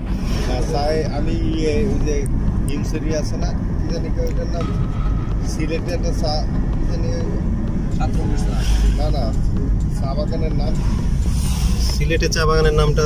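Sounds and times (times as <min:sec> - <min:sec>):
voices talking: 0:00.0 - 0:11.1
vehicle rumble from inside: 0:00.0 - 0:13.0.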